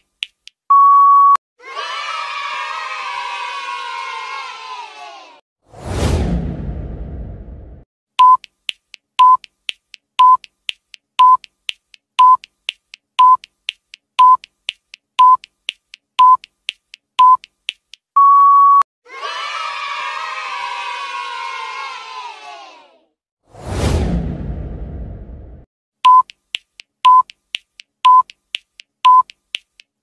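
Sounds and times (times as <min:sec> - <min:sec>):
crowd cheering: 0:01.6 - 0:05.4, 0:19.1 - 0:23.0
short electronic beeps: 0:08.2 - 0:08.4, 0:18.2 - 0:18.8, 0:26.0 - 0:26.3, 0:27.1 - 0:27.3, 0:28.1 - 0:28.3, 0:29.1 - 0:29.3
longer higher beep: 0:18.2 - 0:18.8.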